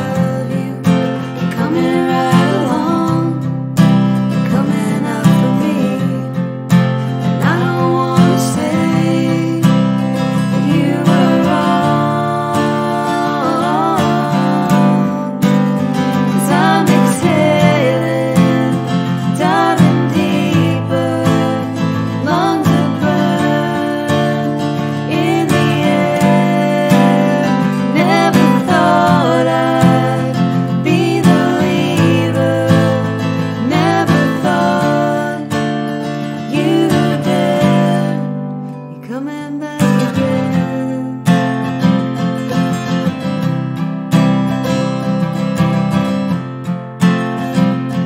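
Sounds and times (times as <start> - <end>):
women singing in harmony: 0.0 - 3.6, 4.4 - 6.4, 7.2 - 38.4, 39.0 - 41.1
acoustic guitar strumming: 0.0 - 48.0.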